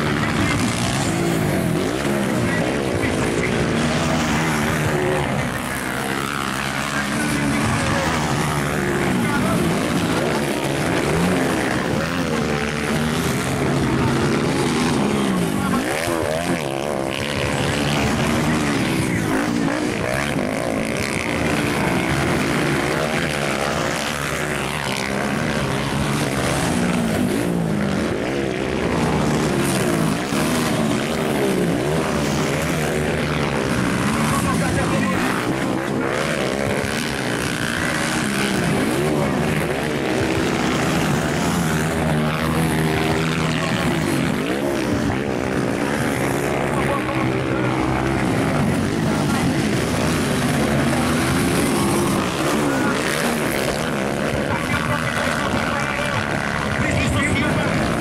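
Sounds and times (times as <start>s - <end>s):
motocross bike engines revving: 0.0s - 58.0s.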